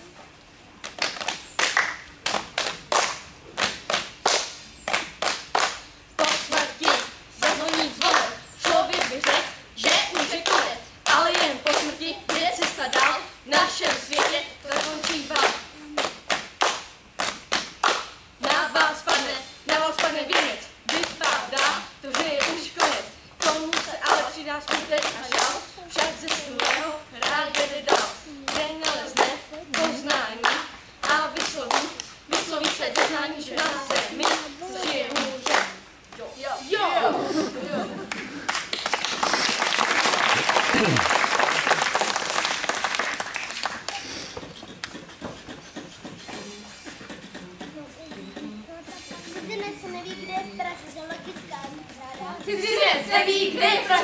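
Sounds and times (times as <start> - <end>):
group clapping in rhythm: 0.8 - 36.2, 38.0 - 49.6, 51.1 - 54.0
voices singing: 6.1 - 16.5, 17.2 - 38.4, 44.4 - 54.0.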